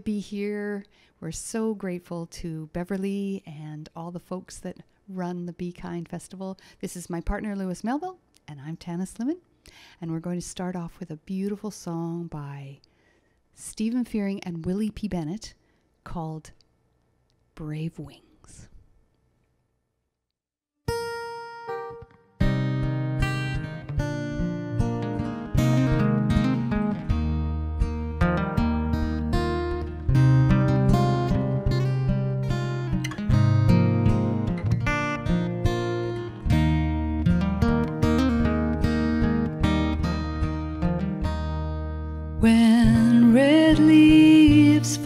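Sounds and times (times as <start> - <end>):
acoustic guitars playing: 20.9 - 45.0.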